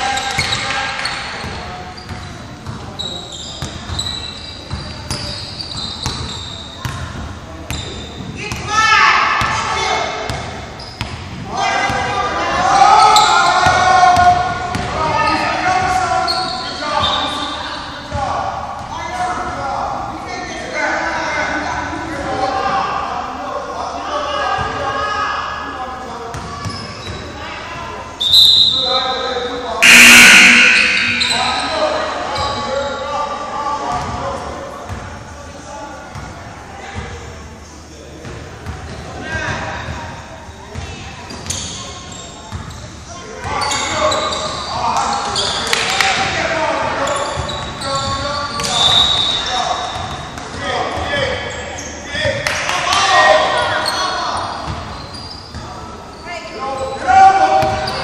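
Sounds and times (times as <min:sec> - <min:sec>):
loud burst: 0:29.8 - 0:31.7.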